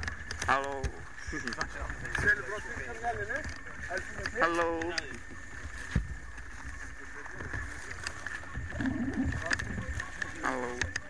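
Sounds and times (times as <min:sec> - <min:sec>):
people's voices outdoors: 0:00.0 - 0:11.0
wind rumble on microphone: 0:00.0 - 0:11.0.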